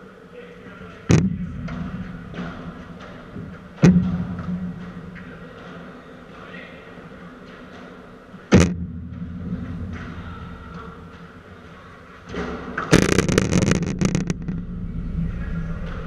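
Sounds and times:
sharp bang: 12.9 - 16.0
low rumble: 13.0 - 16.0.

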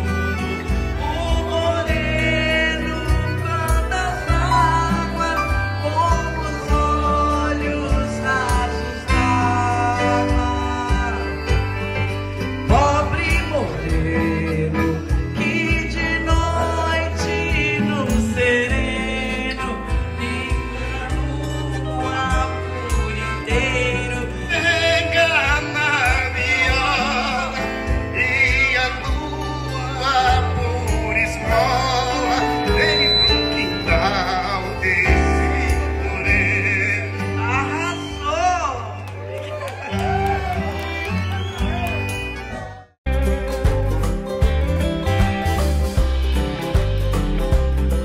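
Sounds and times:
bass: 0.0 - 48.0
country music through pa system: 0.0 - 48.0.

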